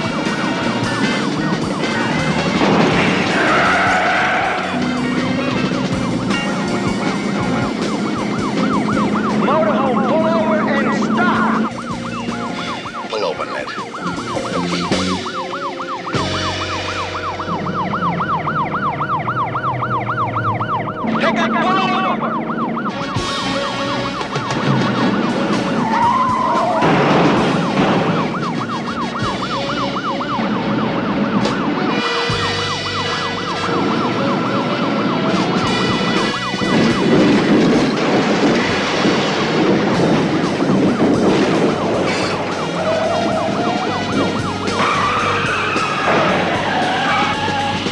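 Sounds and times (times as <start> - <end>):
engine and road noise: 0.0 - 47.9
police siren yelping: 0.0 - 47.9
loud rushing noise: 2.4 - 5.4.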